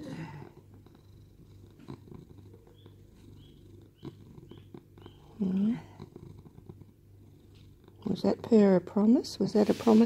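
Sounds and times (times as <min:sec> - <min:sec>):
cat purring: 0:00.0 - 0:10.0.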